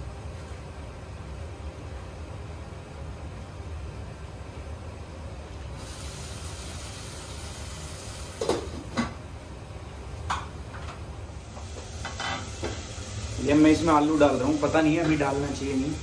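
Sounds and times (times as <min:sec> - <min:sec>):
low hum with hiss: 0:00.0 - 0:16.0.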